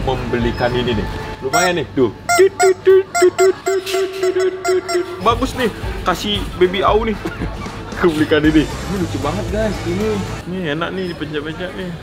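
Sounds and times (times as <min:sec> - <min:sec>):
rubber chicken toy honks: 0:02.3 - 0:05.4.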